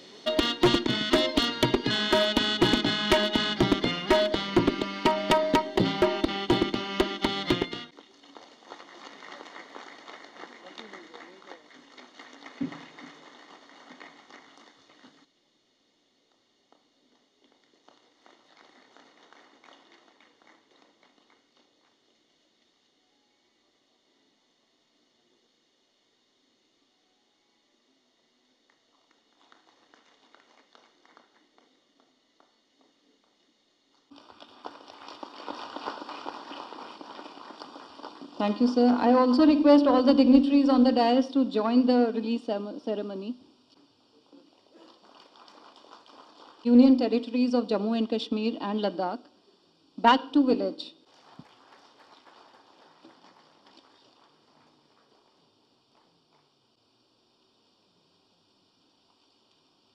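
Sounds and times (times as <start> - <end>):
many hands clapping: 1.1 - 15.2, 17.5 - 22.0, 28.7 - 32.5, 34.1 - 38.5, 44.7 - 46.7, 51.1 - 56.4.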